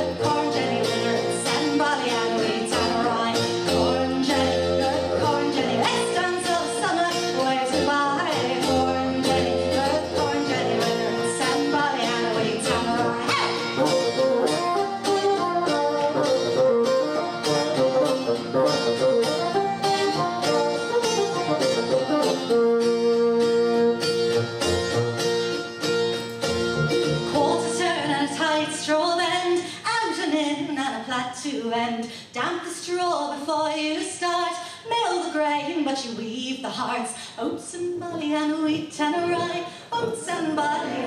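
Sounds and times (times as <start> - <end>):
strummed acoustic guitar: 0.0 - 28.9
bassoon melody: 2.3 - 5.9, 7.1 - 28.2.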